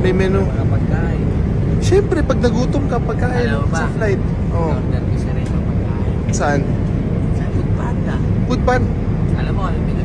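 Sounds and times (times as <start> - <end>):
airliner cabin engine drone: 0.0 - 10.0
voices: 0.0 - 10.0.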